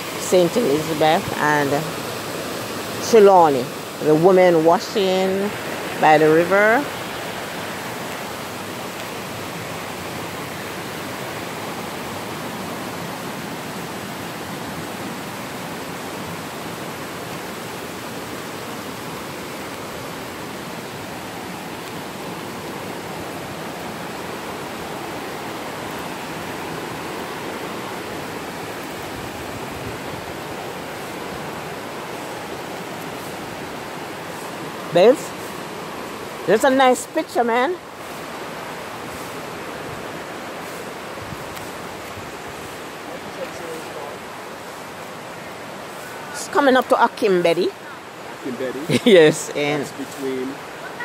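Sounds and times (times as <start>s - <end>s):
river water rushing over rocks: 0.0s - 51.0s.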